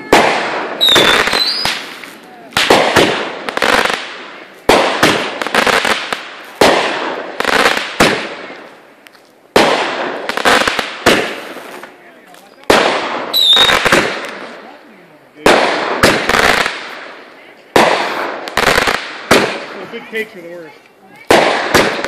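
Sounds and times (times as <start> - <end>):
fireworks bangs: 0.0 - 22.0
fireworks crackle: 0.0 - 22.0.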